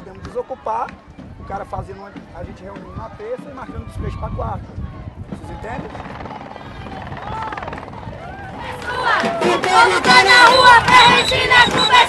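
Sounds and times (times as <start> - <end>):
distant shouting voices: 1.5 - 12.0
helicopter rotor chopping: 5.3 - 12.0.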